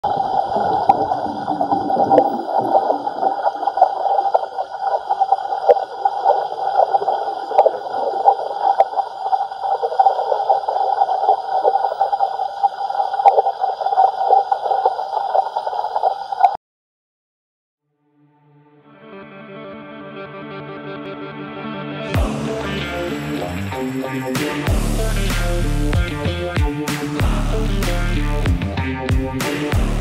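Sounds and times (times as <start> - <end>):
muffled underwater crackling: 0.0 - 16.6.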